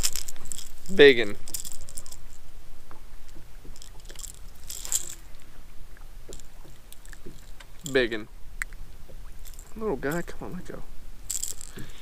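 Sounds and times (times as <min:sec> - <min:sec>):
fishing lure and hooks rattling: 0:00.0 - 0:02.5, 0:03.6 - 0:05.6, 0:06.3 - 0:10.6, 0:11.2 - 0:12.0
short rustling: 0:00.0 - 0:02.5, 0:03.7 - 0:05.6, 0:11.2 - 0:12.0.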